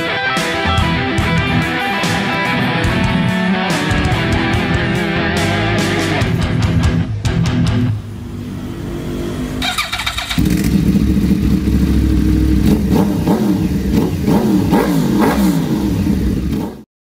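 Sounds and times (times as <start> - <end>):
motorcycle engine revving: 7.4 - 16.9.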